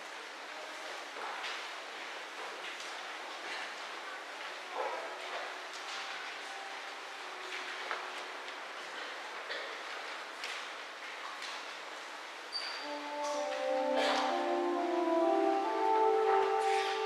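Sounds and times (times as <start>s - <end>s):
faint footsteps: 12.8s - 17.0s.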